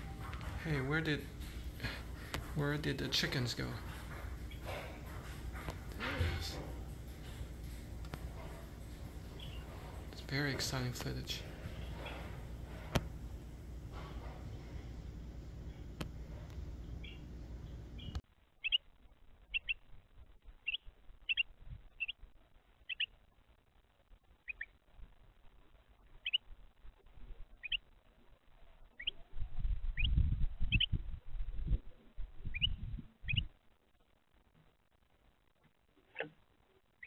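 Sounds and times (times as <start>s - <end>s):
bird chip calls: 9.3s - 10.1s, 17.0s - 17.3s, 18.0s - 18.8s, 19.5s - 19.8s, 20.6s - 22.2s, 22.8s - 23.2s, 24.4s - 24.7s, 26.2s - 26.4s, 27.6s - 27.8s, 29.0s - 29.3s, 30.0s - 31.0s, 32.5s - 33.5s.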